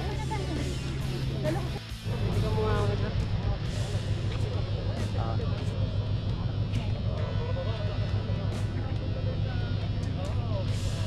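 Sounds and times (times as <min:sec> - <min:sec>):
distant people talking: 0:00.0 - 0:11.0
steady low rumble: 0:00.0 - 0:11.0.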